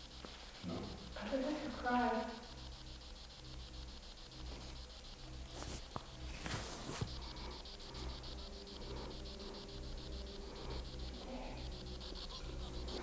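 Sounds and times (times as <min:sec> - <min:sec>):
low hum: 0:00.0 - 0:13.0
rapid pulsing radio buzz: 0:00.0 - 0:13.0.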